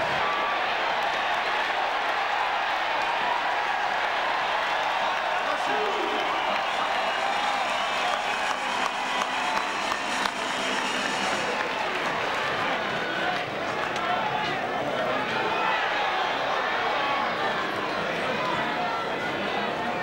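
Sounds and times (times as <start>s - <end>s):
scattered clapping: 0.0s - 14.6s
crowd shouting and cheering: 0.0s - 20.0s.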